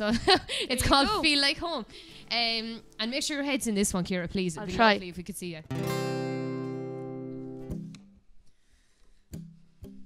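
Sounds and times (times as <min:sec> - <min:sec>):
acoustic guitar chord strummed: 0:05.7 - 0:08.1.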